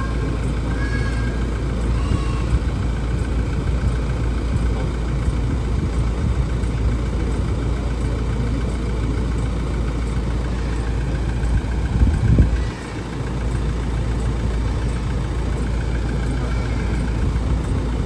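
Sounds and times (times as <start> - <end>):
diesel engine idling: 0.0 - 18.0.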